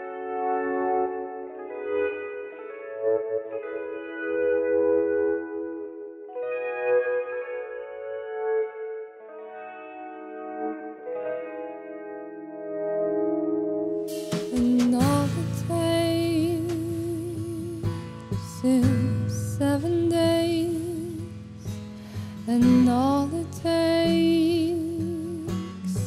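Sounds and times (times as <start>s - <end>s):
echoing guitar chords: 0.0s - 26.0s.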